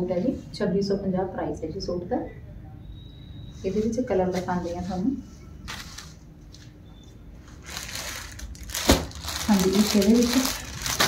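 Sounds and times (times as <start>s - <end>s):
plastic packaging crinkling: 7.5s - 11.0s.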